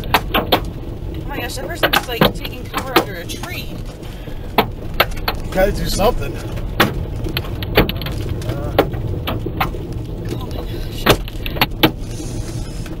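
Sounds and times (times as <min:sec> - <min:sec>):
hail pattering on car roof: 0:00.0 - 0:13.0
sharp hail strikes: 0:00.0 - 0:13.0.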